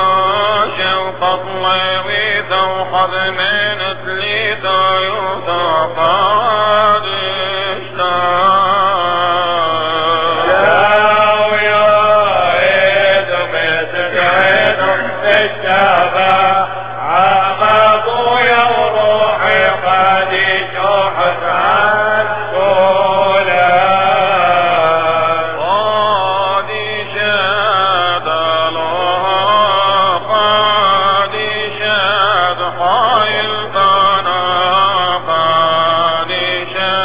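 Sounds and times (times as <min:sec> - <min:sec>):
man chanting liturgy: 0:00.0 - 0:37.0.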